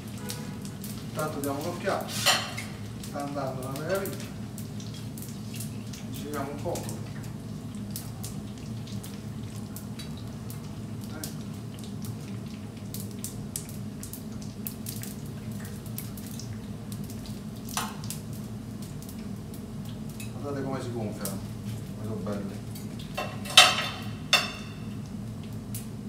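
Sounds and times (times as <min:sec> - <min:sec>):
oil crackling and popping: 0:00.0 - 0:26.0.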